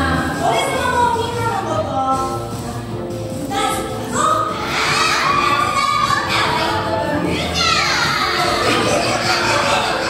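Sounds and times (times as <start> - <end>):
children shouting: 4.4 - 10.0.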